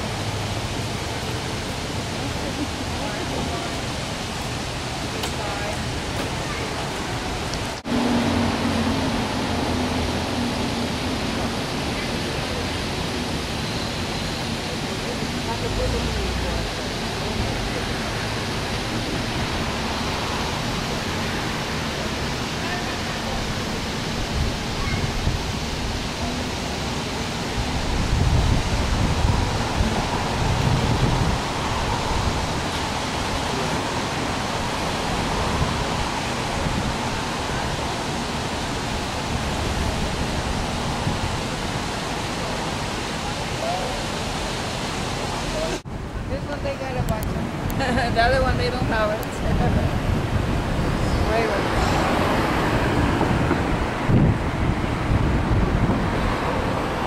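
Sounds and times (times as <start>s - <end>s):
fountain water jets hissing: 0.0s - 57.0s
people talking indistinctly: 45.5s - 50.0s.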